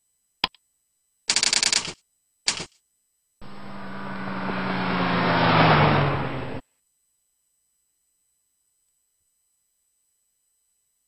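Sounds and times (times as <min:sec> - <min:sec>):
rattle of rapid clicks: 0:01.3 - 0:02.8
car engine sound: 0:03.4 - 0:06.6.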